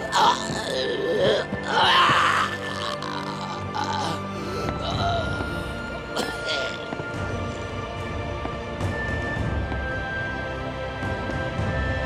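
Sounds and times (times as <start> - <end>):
film score music: 0.0 - 12.0
man groaning in pain: 0.1 - 6.8.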